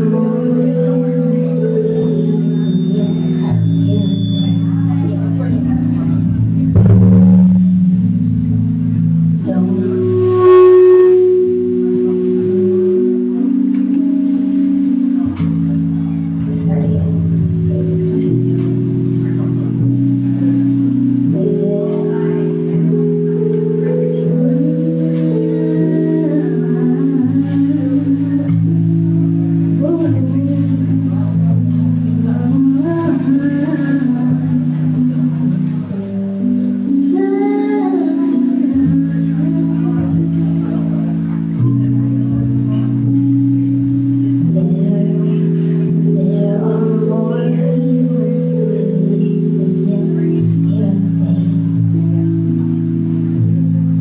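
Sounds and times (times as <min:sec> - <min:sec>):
woman singing: 0:00.0 - 0:06.0, 0:09.4 - 0:11.8, 0:16.4 - 0:18.5, 0:21.3 - 0:23.2, 0:23.9 - 0:29.0, 0:29.7 - 0:36.3, 0:36.9 - 0:40.4, 0:44.4 - 0:51.9
guitar: 0:00.0 - 0:54.0
live band playing slow song: 0:00.0 - 0:54.0
loud drum or cymbal hit: 0:06.8 - 0:09.2.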